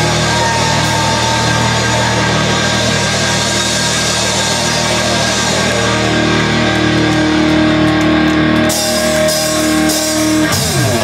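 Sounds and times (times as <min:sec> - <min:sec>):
distorted electric guitars and bass: 0:00.0 - 0:11.0.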